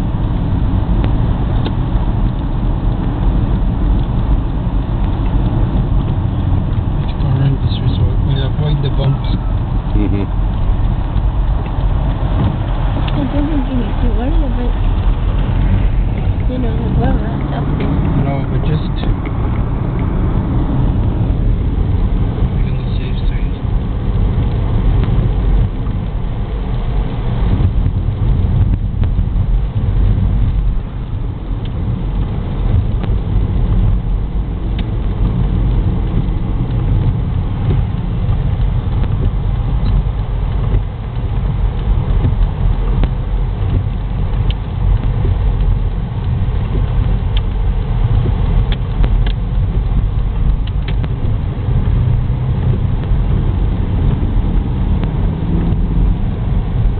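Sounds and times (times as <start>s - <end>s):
car cabin rumble on wet road: 0.0s - 56.9s.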